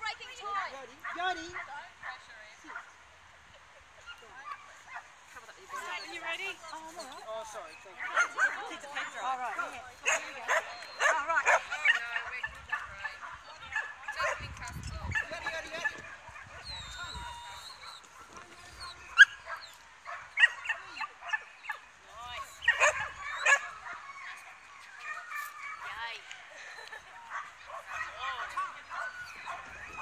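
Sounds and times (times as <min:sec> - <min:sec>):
dogs yipping and barking: 0:05.7 - 0:14.4, 0:15.0 - 0:26.0, 0:26.6 - 0:30.0.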